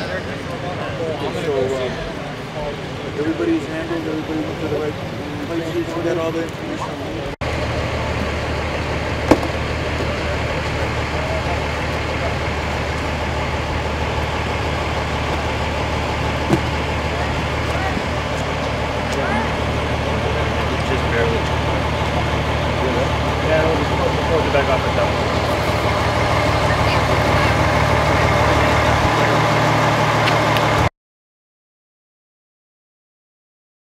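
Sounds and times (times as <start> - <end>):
faint voices: 0.0 - 30.8
vehicle engine idling: 0.0 - 30.9.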